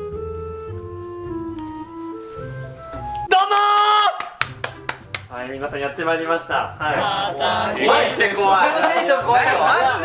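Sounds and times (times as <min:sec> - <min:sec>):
sharp hand claps: 0:03.2 - 0:05.3.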